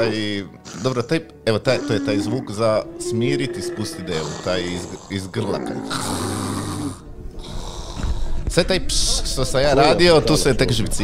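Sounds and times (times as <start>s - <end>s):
camel grumbling: 0.0s - 8.4s.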